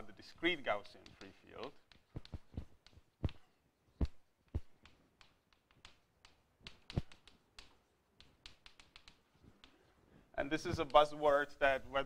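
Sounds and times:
chalk tapping on blackboard: 0:00.5 - 0:09.9, 0:10.5 - 0:11.4.

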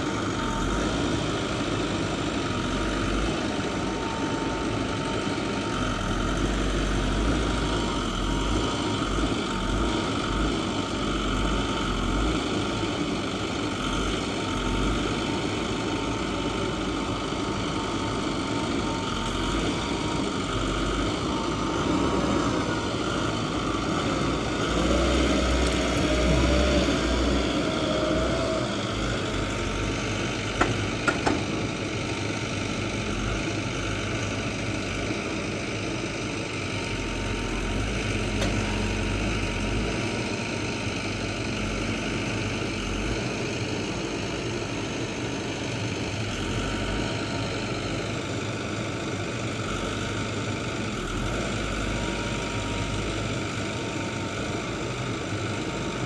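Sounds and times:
diesel engine running: 0:00.0 - 0:56.0
hydraulic crane whine: 0:00.0 - 0:56.0.

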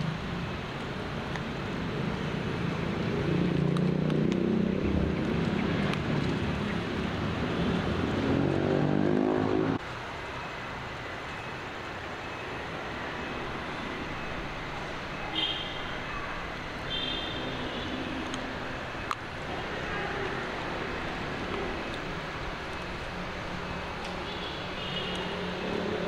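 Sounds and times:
steady background noise: 0:00.0 - 0:26.0
engine drone rising in pitch: 0:02.8 - 0:09.8.

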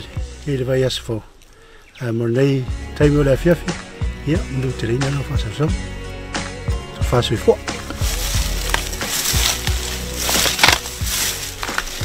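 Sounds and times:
footsteps crunching on dry leaves: 0:07.6 - 0:12.0.

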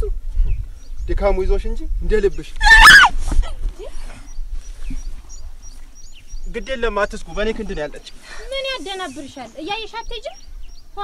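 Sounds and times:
wind rumble on microphone: 0:00.0 - 0:07.3
small birds chirping: 0:00.0 - 0:11.0.

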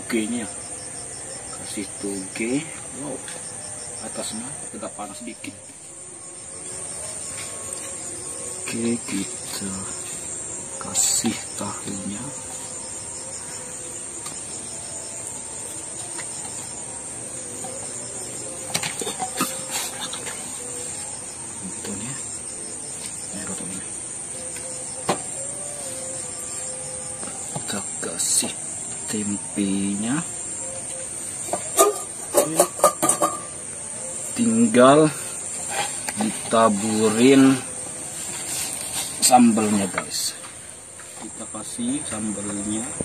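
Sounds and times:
crickets chirping: 0:00.0 - 0:43.0.

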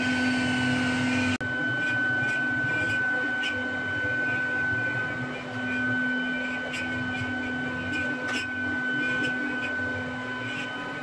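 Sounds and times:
cnc router whining: 0:00.0 - 0:11.0.

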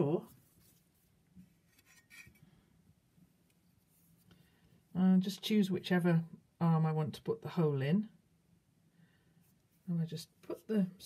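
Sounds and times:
faint clay scrape on canvas: 0:00.3 - 0:02.5.

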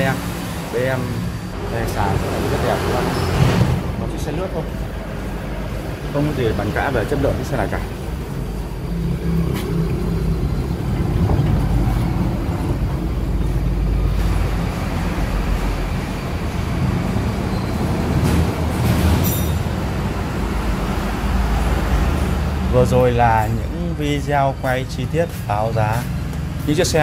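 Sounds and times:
truck engine idling: 0:00.0 - 0:18.9.

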